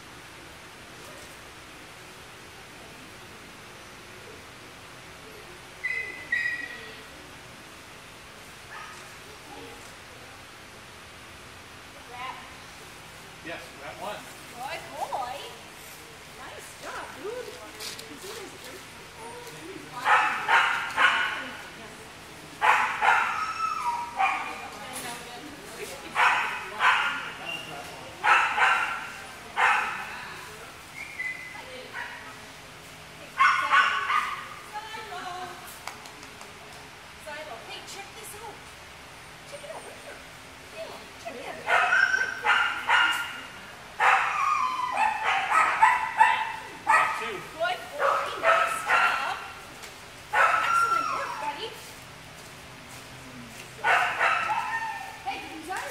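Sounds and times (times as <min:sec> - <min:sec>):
dog barking: 0:20.0 - 0:21.6, 0:22.6 - 0:24.6, 0:26.2 - 0:27.4, 0:28.2 - 0:30.1, 0:33.4 - 0:34.5, 0:41.7 - 0:47.4, 0:48.0 - 0:49.5, 0:50.3 - 0:51.2, 0:53.8 - 0:55.2
dog whining and yelping: 0:23.2 - 0:24.5, 0:44.0 - 0:45.7, 0:50.4 - 0:51.6.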